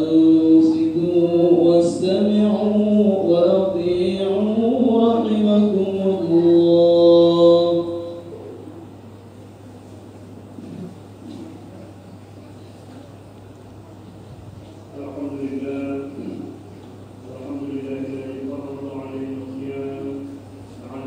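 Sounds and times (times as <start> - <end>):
preacher chanting: 0.0 - 8.5, 14.9 - 16.6, 17.3 - 21.0
low steady hum: 0.0 - 21.0.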